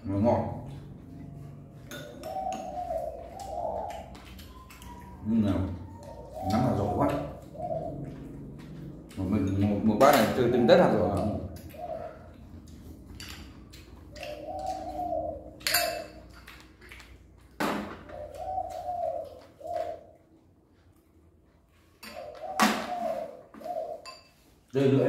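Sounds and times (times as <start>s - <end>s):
dove cooing: 0.0s - 16.4s, 17.7s - 20.4s, 21.9s - 25.0s
spoons clicking against bowls: 12.6s - 14.8s, 15.6s - 17.1s.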